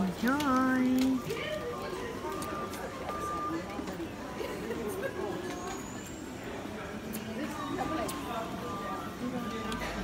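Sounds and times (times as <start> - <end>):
passers-by talking: 0.0 - 10.0
street background noise: 0.0 - 10.0.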